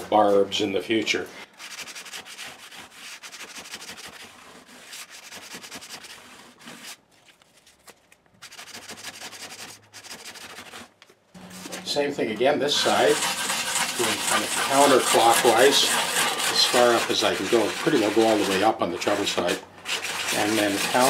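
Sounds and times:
sandpaper rubbing on fret ends: 8.4s - 21.0s.

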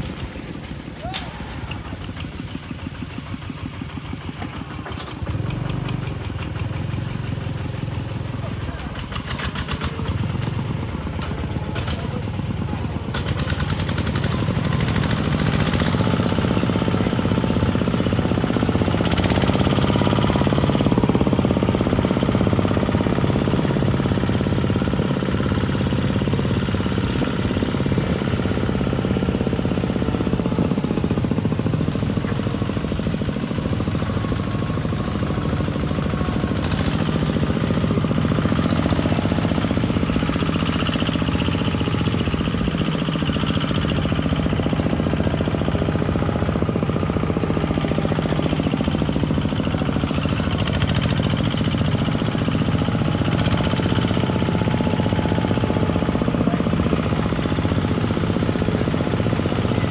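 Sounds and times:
diesel tractor engine running: 0.0s - 59.9s.

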